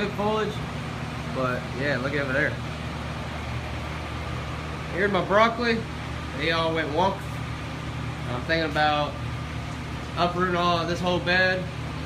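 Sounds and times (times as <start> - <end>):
exhaust fan humming: 0.0 - 12.0.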